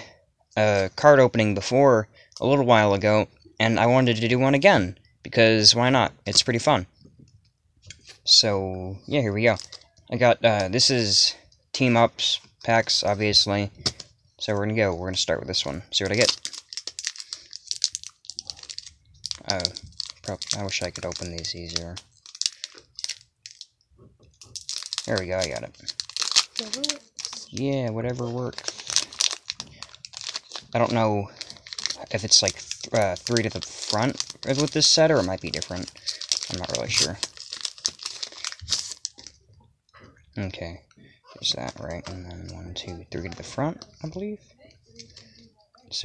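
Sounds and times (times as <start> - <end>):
foil wrapper crinkling: 16.0 - 39.4.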